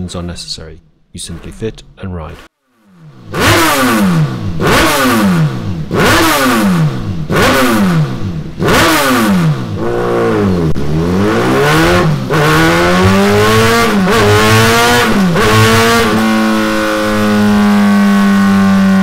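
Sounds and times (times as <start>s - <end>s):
motorcycle engine revving: 2.3s - 19.0s.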